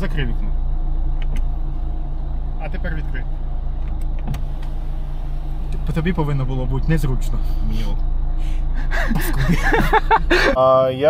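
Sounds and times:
power window motor drone: 0.4s - 8.3s.

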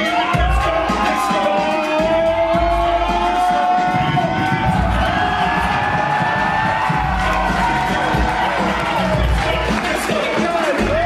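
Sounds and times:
crowd cheering: 0.0s - 11.0s
music playing: 0.0s - 11.0s.

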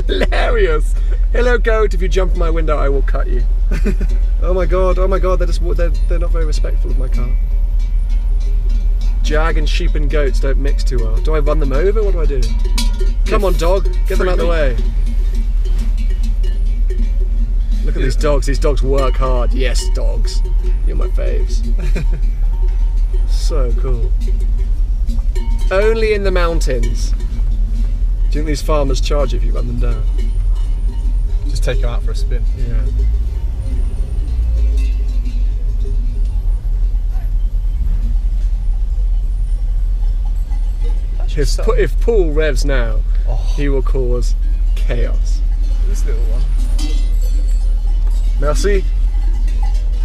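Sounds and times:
animal bells clanking: 0.0s - 50.0s
car engine rumble: 0.0s - 50.0s.

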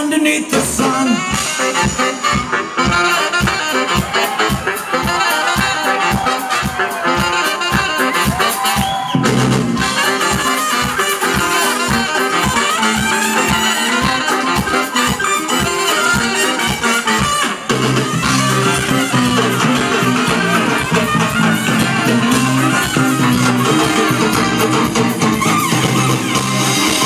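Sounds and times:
funk band horn section: 0.5s - 27.0s
steady drum beat: 1.3s - 27.0s.

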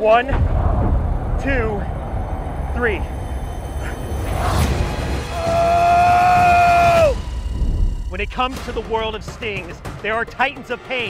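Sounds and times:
low steady rumble: 0.0s - 5.3s
rushing whoosh: 0.3s - 8.2s.

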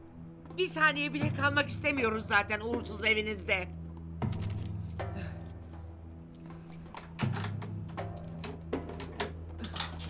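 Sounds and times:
low background music: 0.0s - 10.0s
keys jingling at a door lock: 4.6s - 8.6s.

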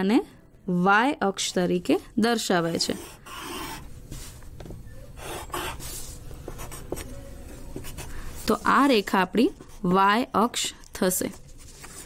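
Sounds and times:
pencil scratching on paper: 2.6s - 3.9s, 5.2s - 7.2s, 7.8s - 10.0s.

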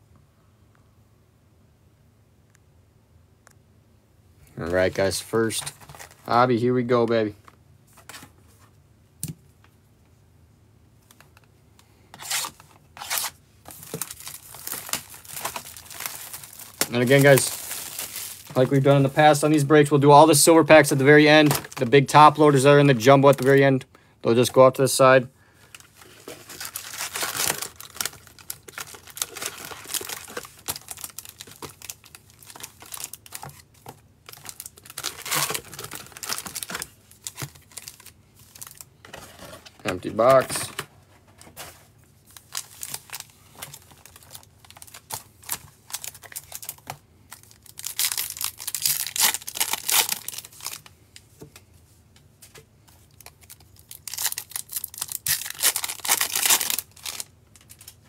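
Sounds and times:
card wrappers torn and crinkled: 4.8s - 6.4s, 12.2s - 23.7s, 25.6s - 40.8s, 41.6s - 50.9s, 53.0s - 58.0s.

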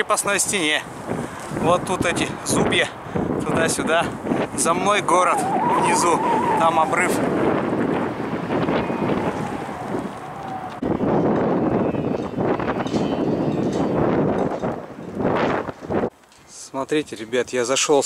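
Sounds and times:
wind buffeting microphone: 0.0s - 16.2s.

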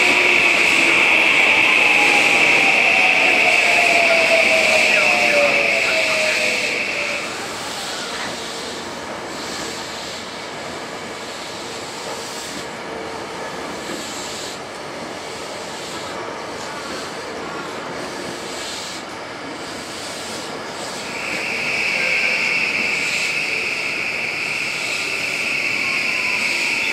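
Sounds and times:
steady high-pitched tone: 0.0s - 8.8s, 20.9s - 26.9s
train motor whine: 0.0s - 9.9s, 19.1s - 26.9s
train wheels rumbling on rail: 0.0s - 26.9s.

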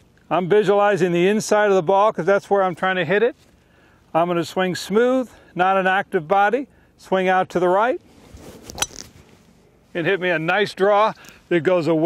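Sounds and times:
metallic crack of golf ball strike: 8.7s - 9.1s.

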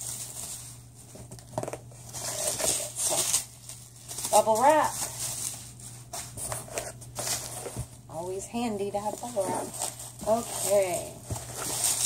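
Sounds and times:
bubble wrap crinkling: 0.0s - 12.0s.

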